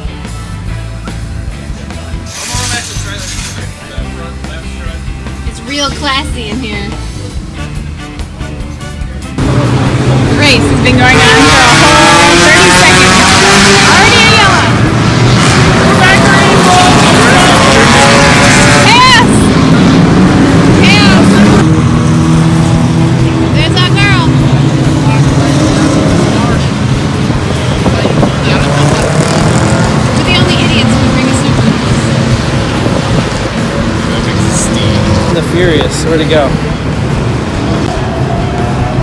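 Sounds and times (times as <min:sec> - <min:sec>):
race car engines at speed: 0:09.2 - 0:39.0.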